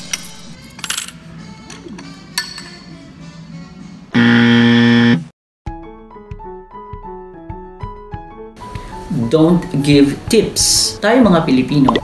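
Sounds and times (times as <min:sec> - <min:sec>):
coins clinking on a tray: 0:00.0 - 0:01.2
background music: 0:00.0 - 0:04.2, 0:05.7 - 0:12.0.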